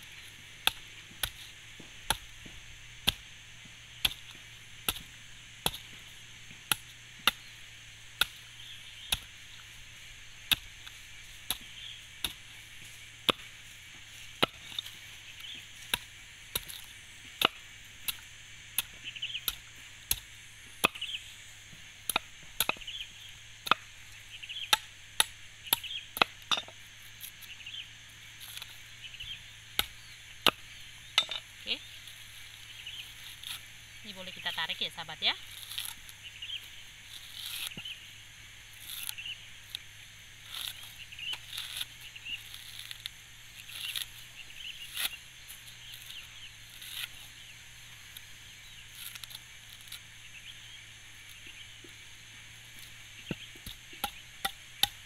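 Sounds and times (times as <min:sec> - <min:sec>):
knife chopping coconut husk: 0:00.1 - 0:24.0, 0:24.6 - 0:27.5, 0:29.5 - 0:37.9, 0:38.7 - 0:50.1, 0:52.7 - 0:55.0.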